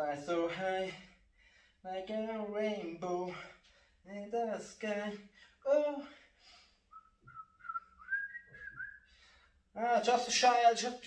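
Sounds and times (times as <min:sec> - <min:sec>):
man whistling a tune: 0:06.9 - 0:09.1.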